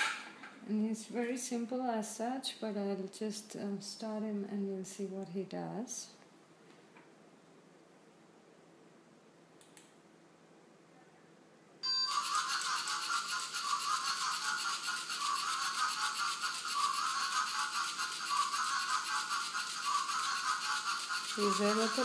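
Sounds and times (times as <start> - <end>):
faint clicks: 9.6 - 10.0
robot buzzing rattle: 12.1 - 22.0.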